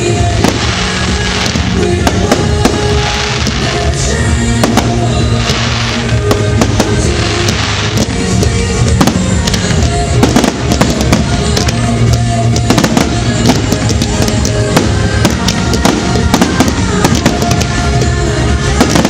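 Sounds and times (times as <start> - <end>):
fireworks bangs: 0.0 - 19.0
fireworks crackle: 0.0 - 19.0
music: 0.0 - 19.0.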